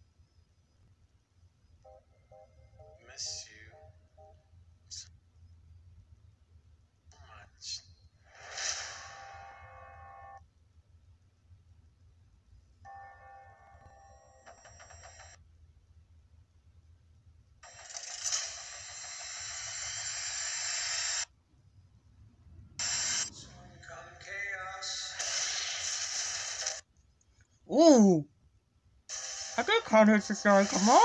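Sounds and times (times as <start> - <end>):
trailer dialogue: 22.4 - 25.8, 29.1 - 31.0.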